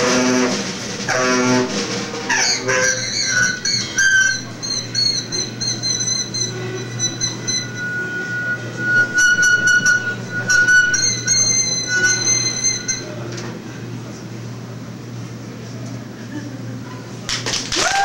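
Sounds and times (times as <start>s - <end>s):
drum kit: 0.0s - 4.9s
improvised saxophone: 0.0s - 13.2s.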